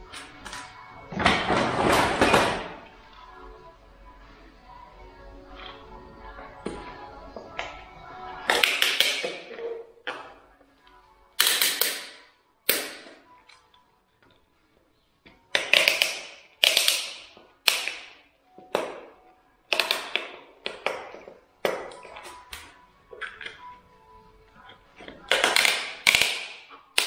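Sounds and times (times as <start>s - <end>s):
faint background music: 0.0s - 27.0s
pliers snapping plastic wedges: 15.6s - 18.2s, 25.3s - 27.0s.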